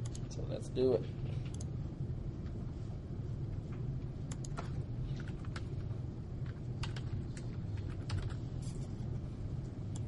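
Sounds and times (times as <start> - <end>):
steady low hum: 0.0 - 10.0
computer keyboard typing: 4.3 - 8.6.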